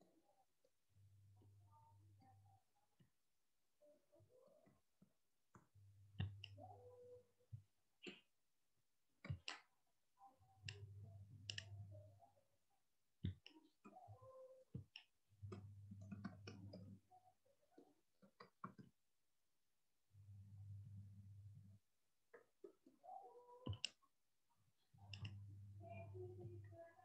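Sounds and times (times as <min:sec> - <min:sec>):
keyboard keystroke clicks: 0:23.6 - 0:24.0.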